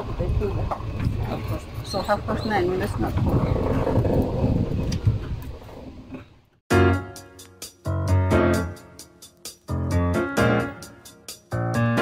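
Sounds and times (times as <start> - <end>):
golf cart rumbling on road: 0.0 - 6.4.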